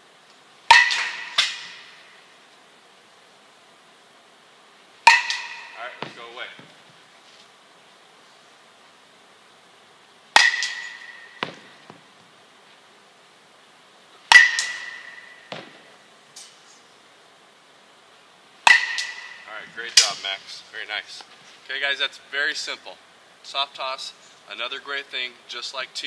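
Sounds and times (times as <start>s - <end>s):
metal bat hitting ball: 0.7s - 2.0s, 5.0s - 6.3s, 10.4s - 12.0s, 14.3s - 15.9s, 18.6s - 20.3s.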